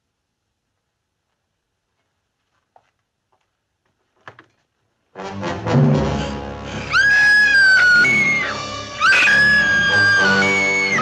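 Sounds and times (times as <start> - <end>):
woman screaming: 6.9 - 11.0.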